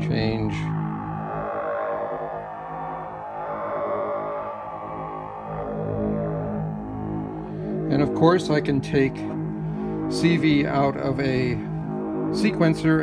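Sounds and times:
synthesizer tone with shifting timbre: 0.0 - 13.0.

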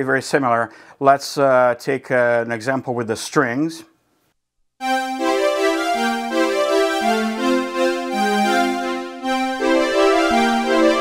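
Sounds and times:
synth string pad chords: 4.8 - 11.0.

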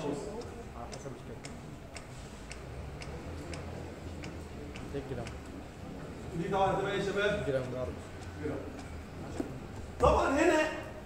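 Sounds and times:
sharp ticking: 0.0 - 10.9.

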